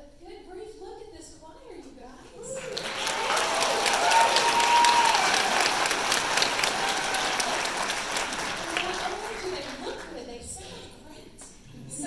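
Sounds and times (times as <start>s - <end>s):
audience applauding: 2.4s - 10.2s.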